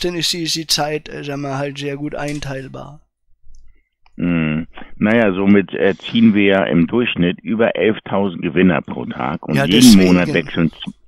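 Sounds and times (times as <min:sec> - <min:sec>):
man speaking over phone: 0:04.2 - 0:11.0.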